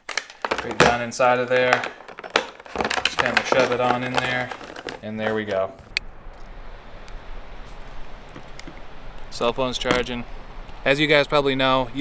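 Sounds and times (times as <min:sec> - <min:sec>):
low rumble: 0:05.7 - 0:12.0.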